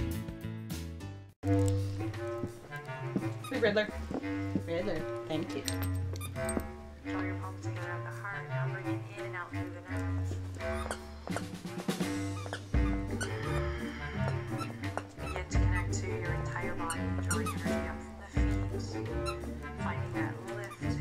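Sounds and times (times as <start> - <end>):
instrumental background music: 0.0 - 21.0
squeaky dog toy squeaking: 10.6 - 11.5, 12.1 - 13.4, 16.8 - 17.9.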